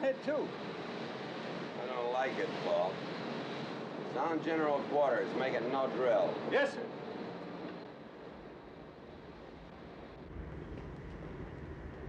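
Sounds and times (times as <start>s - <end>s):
faint wind: 0.0s - 12.0s
low rumble: 9.6s - 12.0s.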